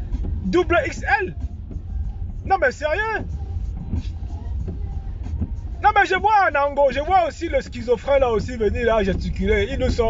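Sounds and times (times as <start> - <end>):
car cabin rumble: 0.0 - 10.0
man talking: 0.4 - 1.4, 2.4 - 3.3, 5.8 - 10.0.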